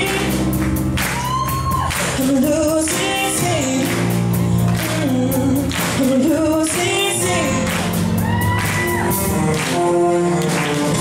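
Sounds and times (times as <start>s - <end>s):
girl singing lead: 0.0s - 10.9s
bass guitar: 0.0s - 11.0s
drums: 0.0s - 11.0s.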